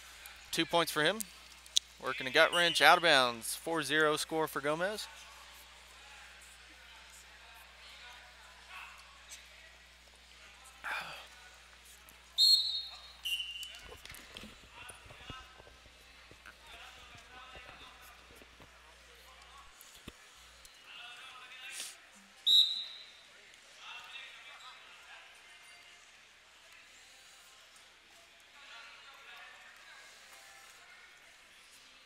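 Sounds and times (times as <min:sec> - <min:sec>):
referee's whistle blasts: 0:02.4 - 0:03.0, 0:12.4 - 0:13.8, 0:22.4 - 0:23.1.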